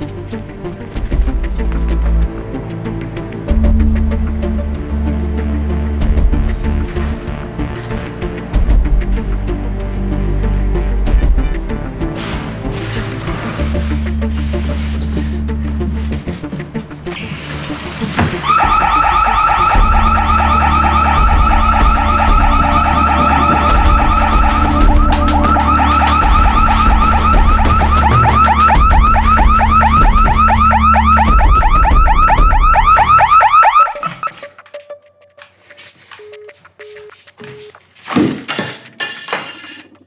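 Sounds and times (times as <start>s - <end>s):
electronic alarm siren: 18.4s - 35.4s.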